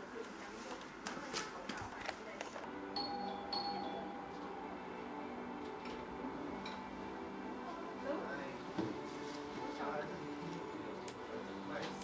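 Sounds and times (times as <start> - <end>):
television voices: 0.0 - 12.0.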